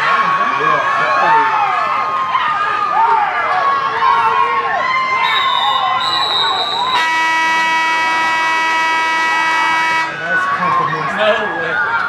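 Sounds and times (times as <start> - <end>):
crowd voices: 0.0 - 12.0
horn blast: 7.0 - 10.4.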